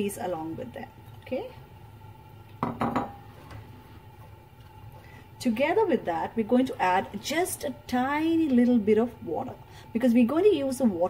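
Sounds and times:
knocks on a metal pan: 0:02.6 - 0:03.1.

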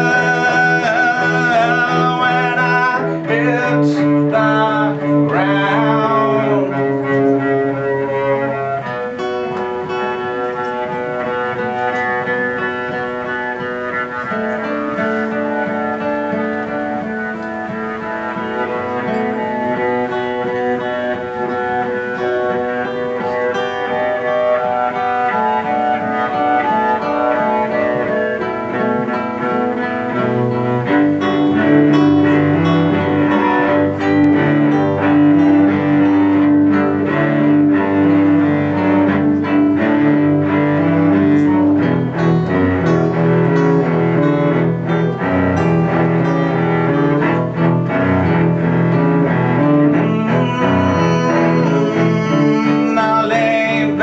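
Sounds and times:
bowed cello: 0:00.0 - 0:54.0
plucked acoustic guitar: 0:00.0 - 0:54.0.

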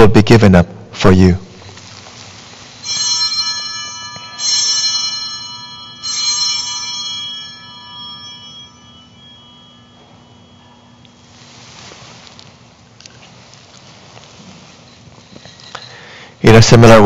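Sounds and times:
small bells ringing: 0:01.5 - 0:12.8, 0:14.0 - 0:17.0.

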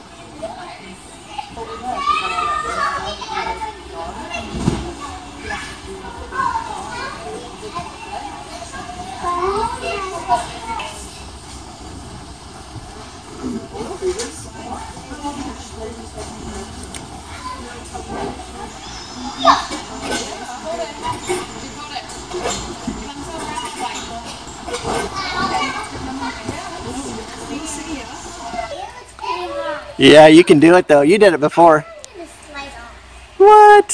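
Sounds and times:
children's voices: 0:00.0 - 0:30.0, 0:31.8 - 0:33.7.

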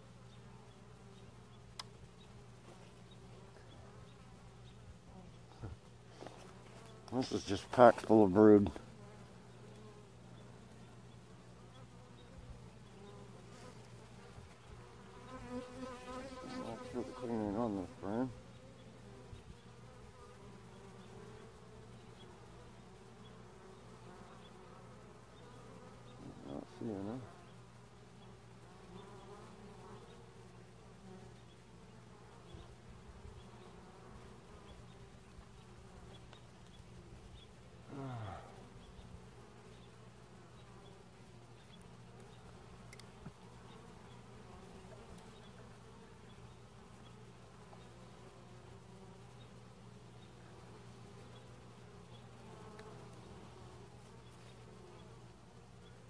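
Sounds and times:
bee buzzing past: 0:00.0 - 0:56.0
honey bees humming: 0:00.0 - 0:56.0.

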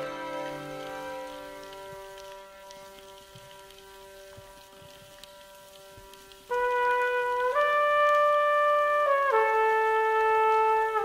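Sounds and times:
soft held orchestral chord: 0:00.0 - 0:03.0
faint clicks: 0:00.4 - 0:07.2
trumpet held note: 0:06.5 - 0:11.0.

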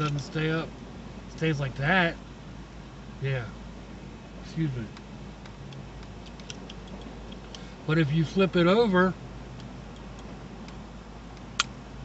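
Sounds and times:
low background hiss: 0:00.0 - 0:12.0
lantern clicks and ticks: 0:04.9 - 0:07.6
small sharp clicks: 0:04.9 - 0:07.6, 0:09.6 - 0:11.8.

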